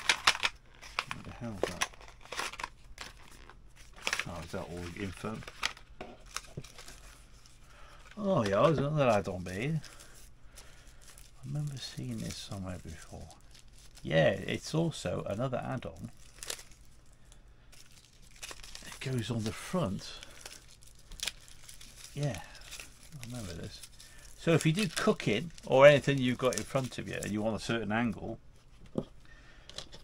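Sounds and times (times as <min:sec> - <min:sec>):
plastic packaging rustling: 0:00.0 - 0:30.0.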